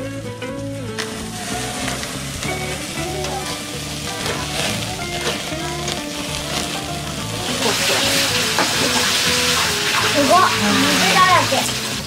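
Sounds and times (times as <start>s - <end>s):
meat sizzling on grill: 0.0s - 12.0s.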